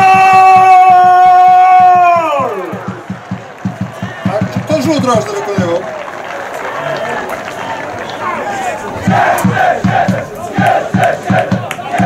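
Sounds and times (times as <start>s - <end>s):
crowd shouting and cheering: 0.0s - 12.0s
crowd chanting: 6.5s - 12.0s.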